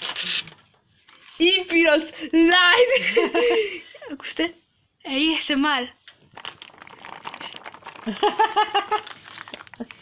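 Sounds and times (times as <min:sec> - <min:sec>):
plastic tub clicking and crackling: 0:06.1 - 0:10.0.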